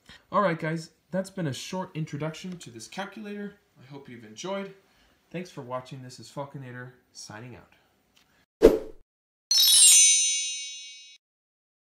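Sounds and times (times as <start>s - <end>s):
bell-like metallic ding: 9.5s - 11.2s.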